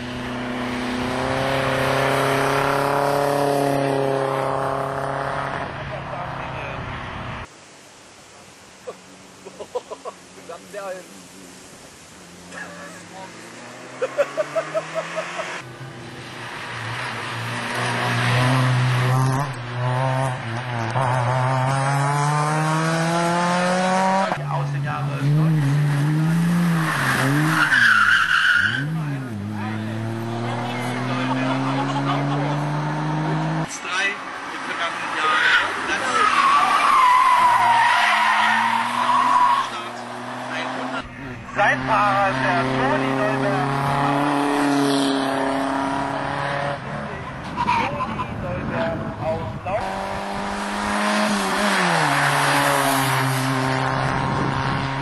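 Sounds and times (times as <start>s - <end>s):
racing car engine revving: 13.3s - 28.0s, 28.6s - 33.7s, 36.3s - 47.2s, 49.7s - 55.0s
tyres squealing: 35.1s - 40.8s.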